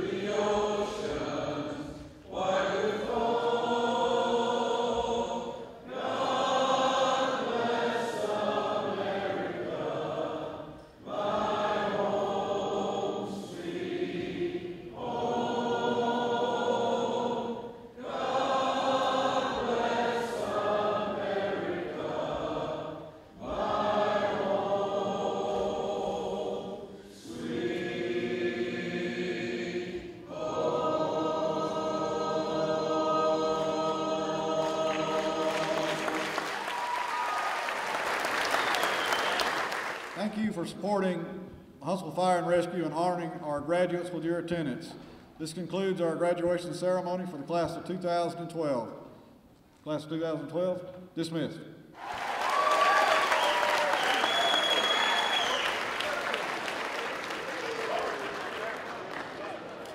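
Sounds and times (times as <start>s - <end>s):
men singing in harmony: 0.0s - 36.3s.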